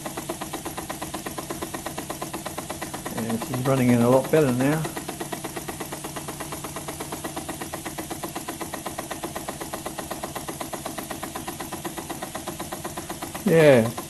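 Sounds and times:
model steam engine puffing: 0:00.0 - 0:14.0.

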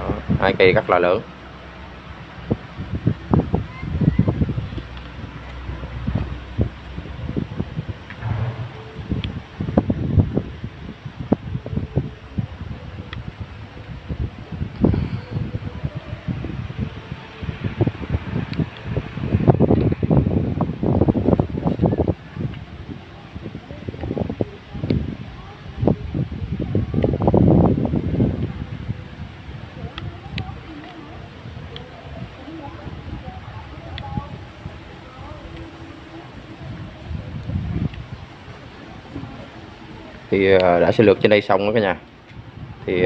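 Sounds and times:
wind buffeting phone microphone: 0:00.0 - 0:43.0.

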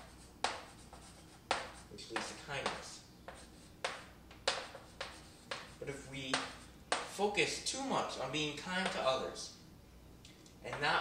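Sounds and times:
chalk writing on a chalkboard: 0:00.0 - 0:07.2.

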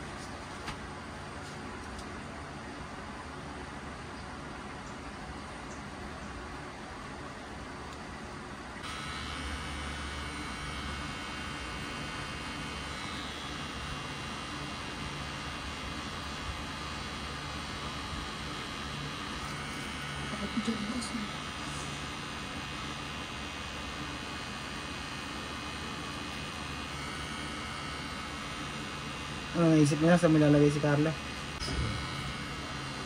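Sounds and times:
steady background hum: 0:00.0 - 0:33.0
tattoo pen motor humming: 0:08.8 - 0:33.0.

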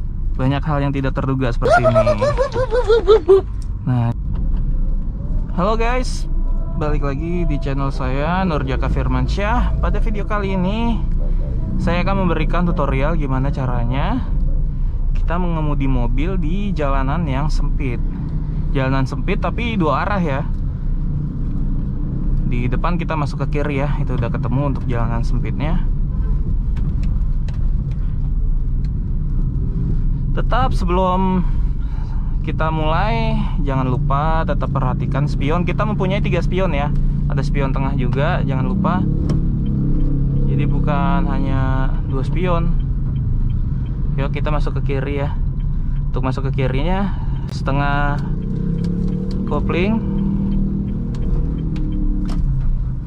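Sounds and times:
car engine rumble: 0:00.0 - 0:53.0
road noise inside car: 0:00.0 - 0:53.0.

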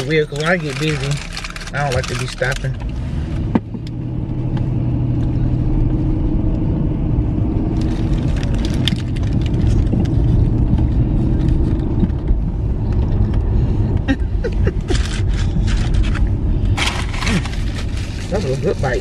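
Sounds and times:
paper wrapper crinkling: 0:00.0 - 0:02.7, 0:07.8 - 0:10.3, 0:16.8 - 0:19.0
car engine and road noise: 0:00.0 - 0:19.0.

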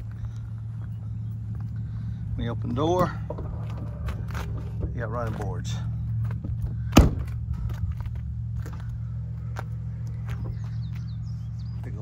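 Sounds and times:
steady low hum: 0:00.0 - 0:12.0
car door slamming shut: 0:06.9 - 0:07.4.

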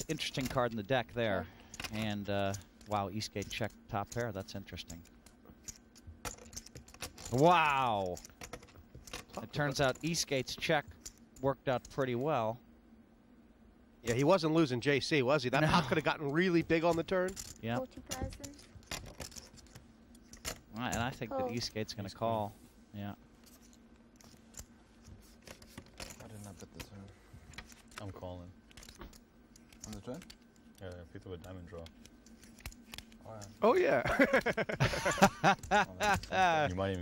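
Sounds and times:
poker chips clicking: 0:01.7 - 0:10.2.

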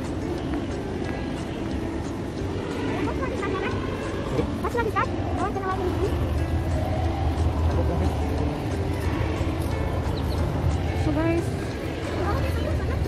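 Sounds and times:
indistinct voices: 0:00.0 - 0:13.0
low traffic rumble: 0:00.0 - 0:13.0.

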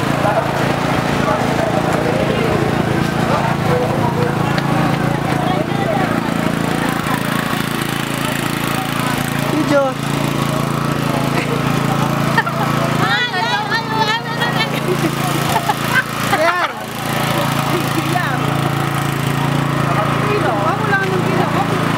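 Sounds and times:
crowd voices and calls: 0:00.0 - 0:21.9
small engine humming: 0:00.0 - 0:21.9.

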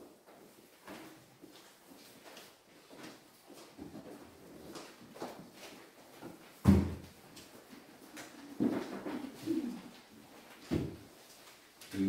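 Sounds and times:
soft knocks and rustles: 0:00.1 - 0:11.9.

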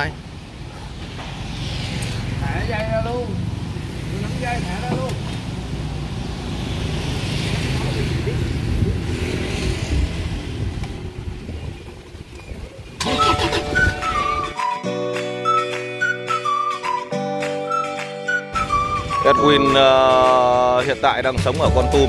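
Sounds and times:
street traffic rumble: 0:00.0 - 0:14.6
flute melody over plucked notes: 0:13.0 - 0:20.4.

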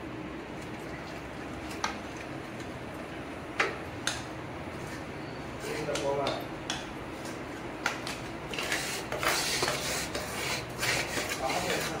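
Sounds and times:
hand scraping dough in metal bowl: 0:04.8 - 0:06.4, 0:08.5 - 0:12.0.

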